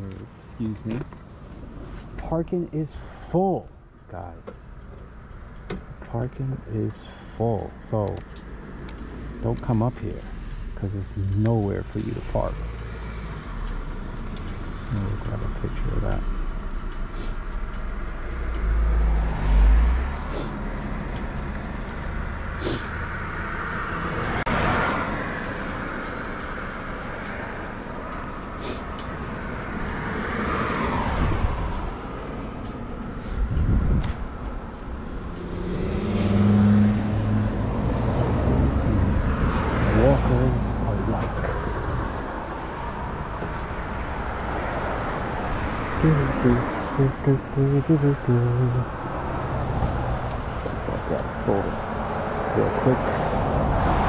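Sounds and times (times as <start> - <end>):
cars passing: 0.0 - 54.0
vehicle engine hum: 0.0 - 54.0.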